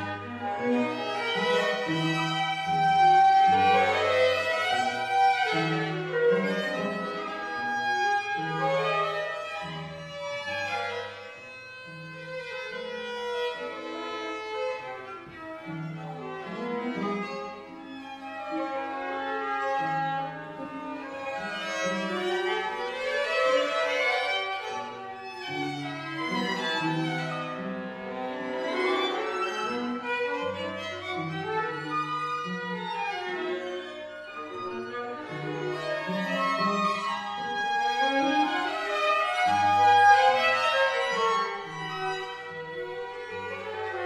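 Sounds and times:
string quartet playing: 0.0s - 44.0s.

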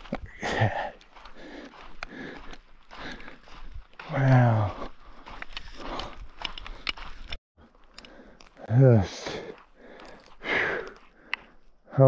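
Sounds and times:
footsteps on rocky dirt trail: 0.0s - 12.0s.

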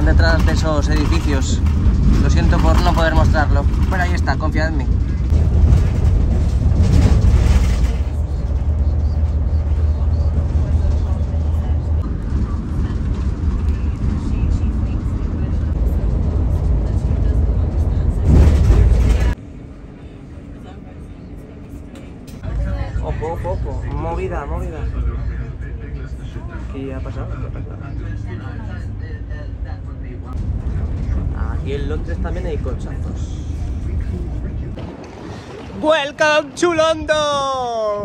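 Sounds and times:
bus road and engine rumble: 0.0s - 38.0s
rushes of road noise: 0.0s - 38.0s.

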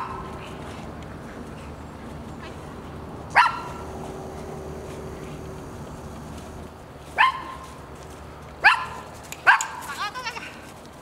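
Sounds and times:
dog barking: 3.4s - 3.8s, 7.2s - 7.6s, 8.6s - 9.8s.

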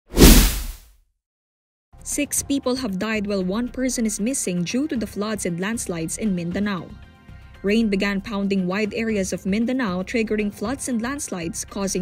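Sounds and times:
whoosh: 0.1s - 0.8s
low boom: 0.2s - 0.8s.

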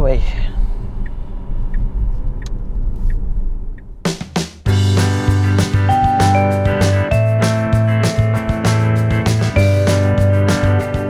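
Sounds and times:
road and tyre rumble in car: 0.4s - 4.1s
music with strummed strings and drums: 4.1s - 11.0s.

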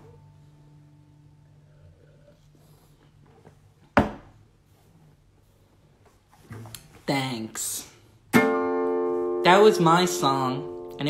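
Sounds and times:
man talking: 7.0s - 8.0s, 9.4s - 11.0s
acoustic guitar chord strummed: 8.3s - 11.0s.

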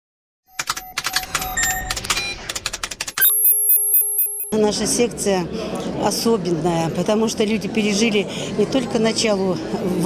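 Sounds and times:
pulsing electronic beep: 0.6s - 2.4s, 3.2s - 4.6s
rapid clicks: 0.6s - 3.2s
short chiming tones: 3.2s - 4.6s.

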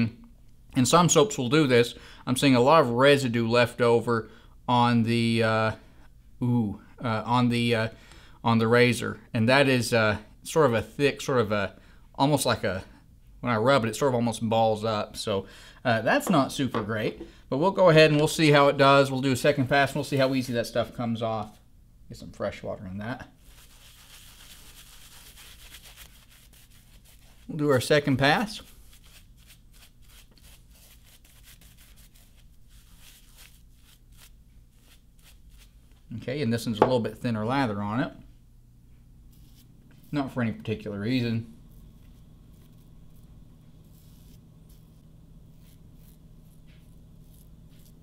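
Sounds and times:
low steady hum: 0.0s - 48.0s
razor scraping stubble: 23.4s - 36.0s, 39.3s - 48.0s
shaving brush rubbing on cheek: 23.4s - 36.1s, 39.3s - 48.0s.

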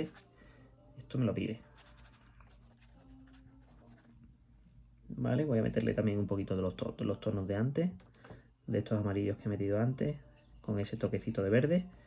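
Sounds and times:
paintbrush scratching on paper: 0.0s - 0.3s, 1.6s - 4.2s.

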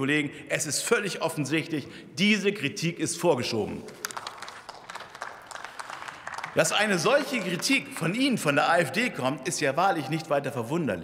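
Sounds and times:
applause: 3.9s - 8.6s.

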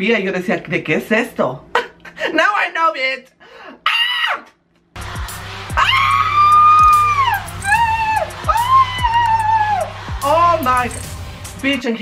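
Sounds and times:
high-pitched screams: 3.8s - 4.5s, 5.7s - 11.1s
pop track with sliding bass drops: 5.0s - 11.8s.

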